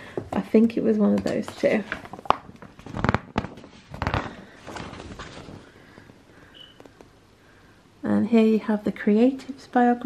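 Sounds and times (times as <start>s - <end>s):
glossy paper pages turning: 1.4s - 5.7s.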